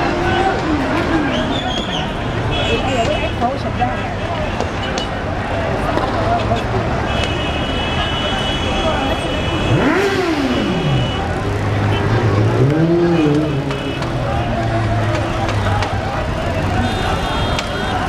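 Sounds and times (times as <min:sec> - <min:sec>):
street noise: 0:00.0 - 0:18.0
voices: 0:00.0 - 0:18.0
vehicle engine revving: 0:09.5 - 0:16.8.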